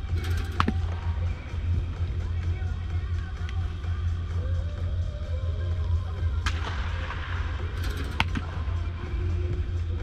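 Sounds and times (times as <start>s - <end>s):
music: 0.0s - 10.0s
steady low hum: 0.0s - 10.0s
bat hitting baseball: 0.4s - 1.0s, 6.4s - 8.6s.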